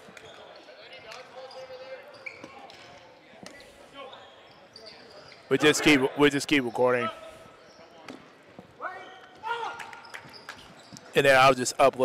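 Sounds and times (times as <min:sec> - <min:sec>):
faint shouting: 0:08.8 - 0:09.9.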